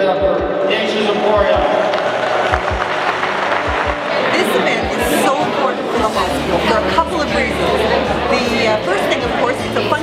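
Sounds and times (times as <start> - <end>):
background music with drum thumps: 0.0 - 0.7, 1.3 - 4.1
crowd applauding: 0.8 - 6.0.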